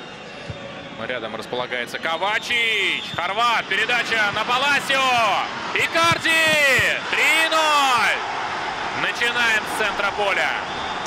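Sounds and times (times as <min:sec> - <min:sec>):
stadium crowd noise: 0:00.0 - 0:11.0
commentator shouting: 0:03.8 - 0:08.2.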